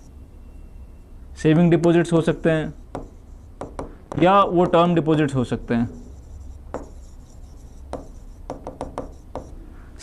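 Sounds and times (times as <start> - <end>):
pen scratching on board: 2.4 - 4.9, 5.6 - 9.6
pen taps: 3.0 - 4.8, 6.7 - 7.0, 7.9 - 9.5.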